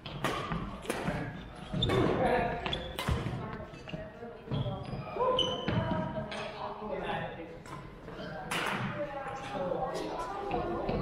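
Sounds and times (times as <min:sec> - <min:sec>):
sneakers squeaking on wooden floor: 0:01.5 - 0:06.2.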